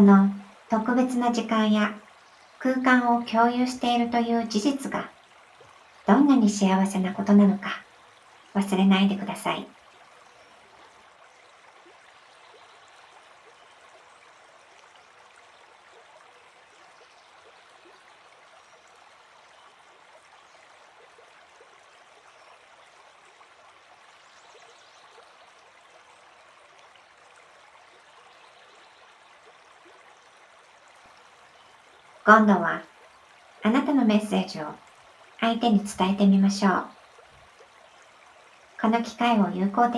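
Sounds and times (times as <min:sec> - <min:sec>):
stream running: 0:00.0 - 0:39.9
water trickling: 0:00.0 - 0:39.9.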